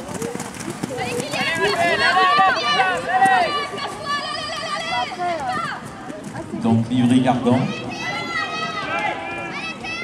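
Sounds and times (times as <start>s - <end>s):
spectators shouting: 1.0s - 5.9s, 7.4s - 10.0s.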